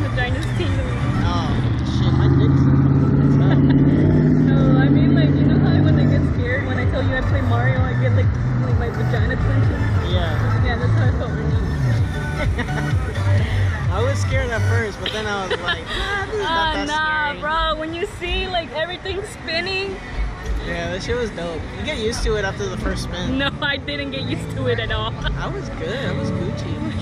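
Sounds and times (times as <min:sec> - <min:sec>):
music: 0:00.0 - 0:19.3, 0:20.1 - 0:27.0
voices: 0:00.0 - 0:27.0
loud low drone: 0:00.2 - 0:14.1.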